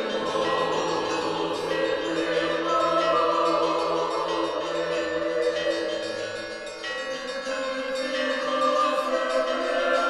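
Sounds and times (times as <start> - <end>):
choir singing long chords: 0.0 - 10.0.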